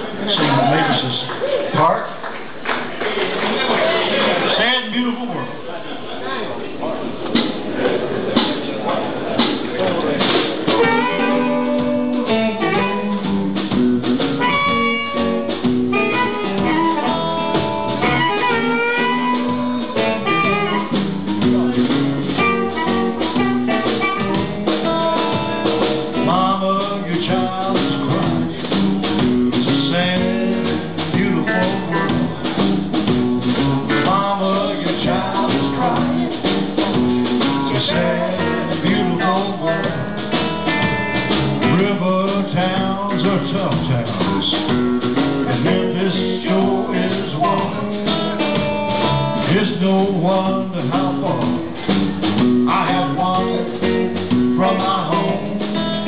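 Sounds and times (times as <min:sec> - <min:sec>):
slow blues band playing: 0:07.0 - 0:56.0
harmonica wailing lead lines: 0:10.8 - 0:13.4, 0:14.3 - 0:21.2, 0:22.4 - 0:26.0.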